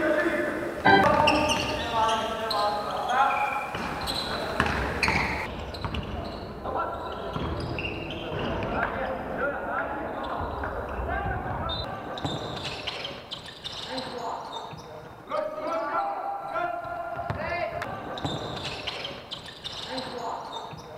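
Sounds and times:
players calling out: 0.6 - 5.5
ball bouncing on court: 0.9 - 1.8, 3.7 - 6.2, 7.3 - 8.8, 17.1 - 19.0.

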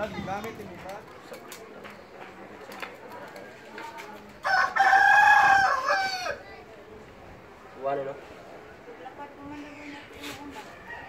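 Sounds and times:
rooster crowing: 4.4 - 6.4.

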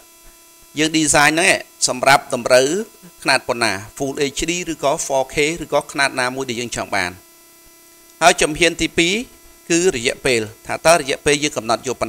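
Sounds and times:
electrical hum: 0.0 - 12.0
person talking: 0.8 - 7.2, 8.2 - 12.0.

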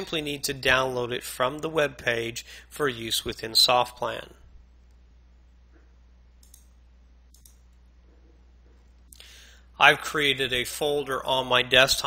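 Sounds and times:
low room hum: 0.0 - 12.0
computer mouse clicks: 6.4 - 7.8.

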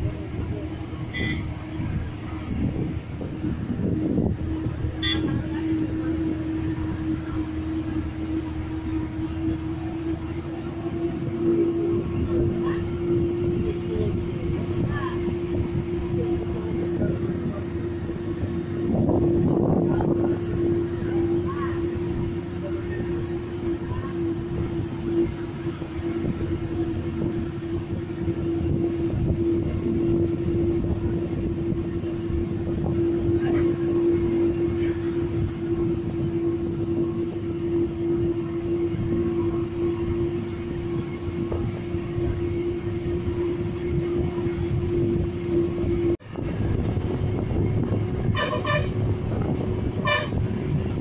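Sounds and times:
bus engine rumbling: 0.0 - 51.0.

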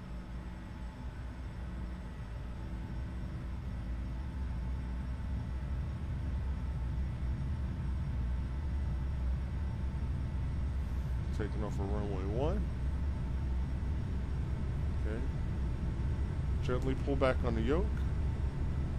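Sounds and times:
jet engine low rumble: 0.0 - 18.9.

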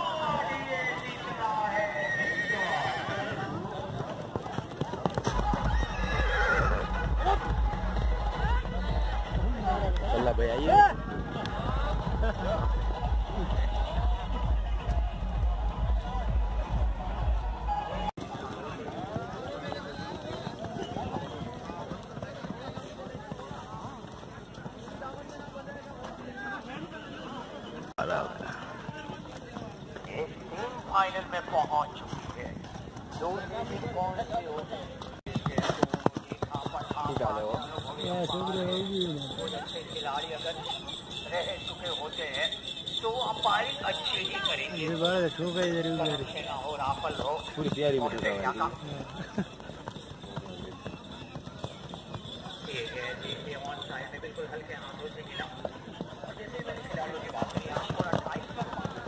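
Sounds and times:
horse galloping on sand: 0.0 - 27.0, 28.0 - 59.0
crowd voices and shouts: 0.0 - 59.0
horse whinnying: 1.8 - 3.6, 5.3 - 7.6.

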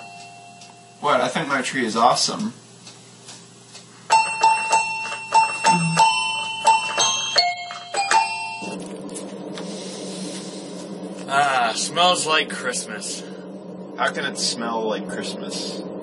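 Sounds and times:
low hum and hiss: 0.0 - 16.0
bell-like chiming melody: 4.1 - 8.8.

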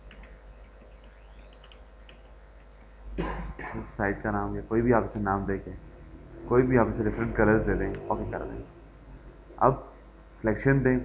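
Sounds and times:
keyboard typing: 0.0 - 2.9
steady low hum: 0.0 - 11.0.

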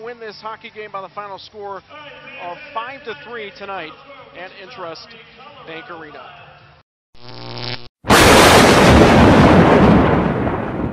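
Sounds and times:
thunder roar: 8.0 - 10.9.

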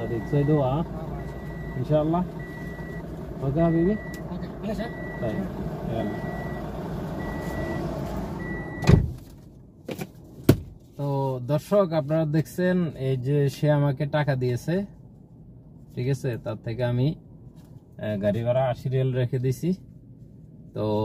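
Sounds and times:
car engine idling: 0.0 - 9.0
car door warning chime: 7.2 - 9.0
car door slamming: 8.6 - 9.3, 9.9 - 10.8.

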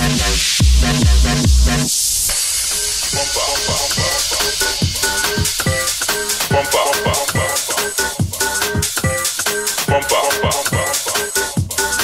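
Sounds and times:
electro house music: 0.0 - 12.0
synth stabs with pitch sweeps: 0.0 - 12.0
high hissing noise: 1.9 - 8.2.

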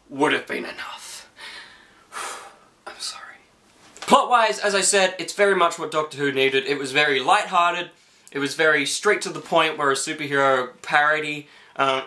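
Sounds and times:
man whispering breathily: 0.6 - 1.4, 2.4 - 3.5.

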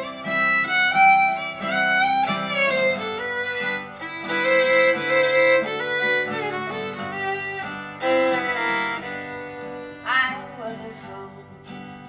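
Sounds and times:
fiddle playing a melody: 0.0 - 11.8
strummed acoustic guitar: 0.0 - 12.0.

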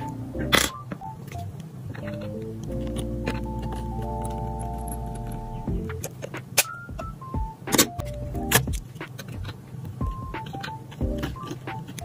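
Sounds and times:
light background music: 0.0 - 12.0.

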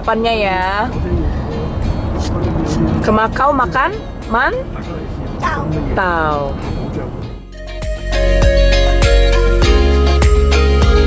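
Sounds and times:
car cabin low rumble: 0.0 - 7.6.

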